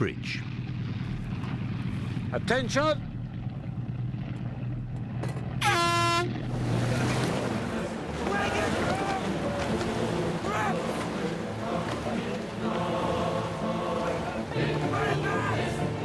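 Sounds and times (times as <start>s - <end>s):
steady low hum: 0.0s - 8.2s
air horn blast: 5.6s - 6.5s
people shouting: 8.2s - 12.0s, 14.0s - 16.0s.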